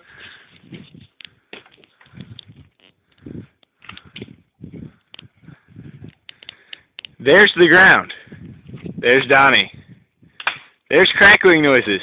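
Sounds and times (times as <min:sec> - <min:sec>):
dead wood cracking and creaking: 0:00.1 - 0:07.2
sharp clicks of crackling wood: 0:00.6 - 0:04.4, 0:05.0 - 0:05.3, 0:06.0 - 0:07.2, 0:10.3 - 0:10.8.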